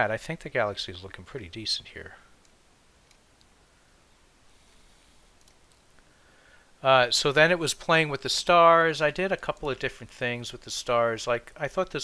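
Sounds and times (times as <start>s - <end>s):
computer mouse clicks: 5.4s - 5.9s.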